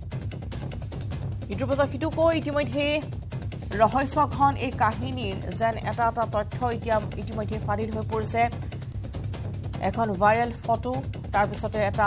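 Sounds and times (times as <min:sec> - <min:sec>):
background music: 0:00.0 - 0:12.0
narrator speaking: 0:01.5 - 0:03.1, 0:03.7 - 0:08.6, 0:09.8 - 0:12.0.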